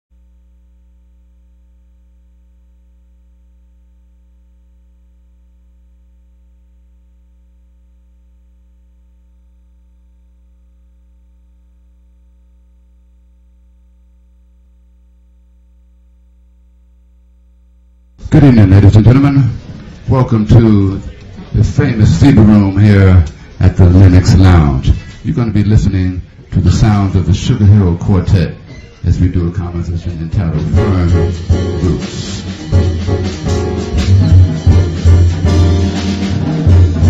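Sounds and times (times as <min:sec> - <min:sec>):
low electrical hum: 0:00.1 - 0:35.5.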